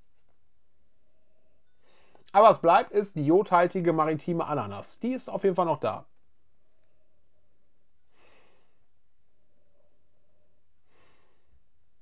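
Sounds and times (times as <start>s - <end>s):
man sniffing through the nose: 8.1s - 8.8s, 10.8s - 11.6s.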